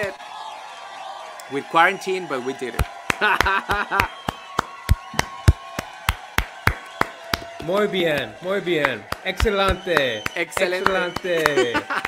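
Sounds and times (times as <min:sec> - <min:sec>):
hands clapping in rhythm: 0:02.6 - 0:12.0.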